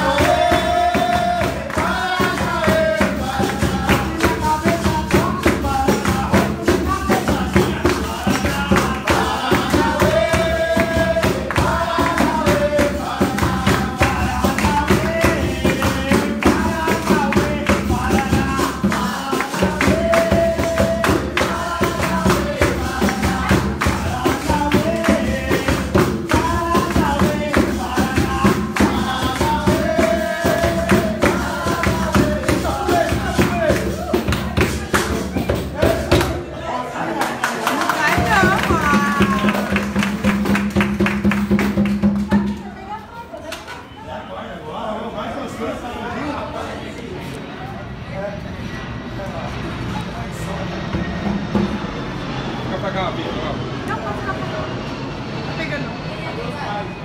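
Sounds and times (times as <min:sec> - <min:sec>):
tambourine and percussion: 0:00.0 - 0:36.2, 0:38.2 - 0:42.6
call-and-response singing: 0:00.0 - 0:42.1.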